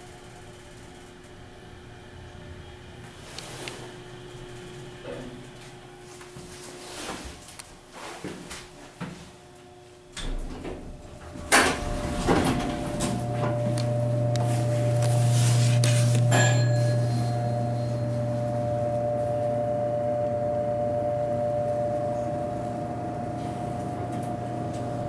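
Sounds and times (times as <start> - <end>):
elevator low hum: 0.0 - 7.6, 9.5 - 25.0
elevator clunks: 10.2 - 15.1
high whine: 10.8 - 25.0.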